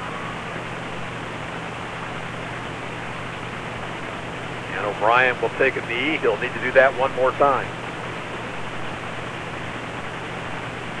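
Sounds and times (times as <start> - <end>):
stadium ambience with low hum: 0.0 - 11.0.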